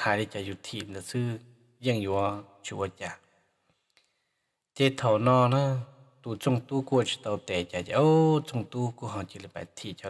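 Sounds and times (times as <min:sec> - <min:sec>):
person speaking: 0:00.0 - 0:03.2, 0:04.8 - 0:10.0.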